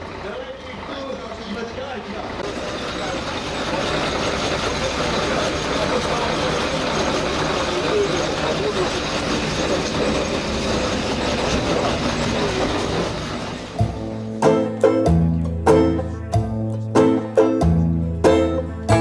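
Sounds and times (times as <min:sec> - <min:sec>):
heavy vehicle running: 0:00.0 - 0:19.0
faint voices: 0:00.1 - 0:13.4.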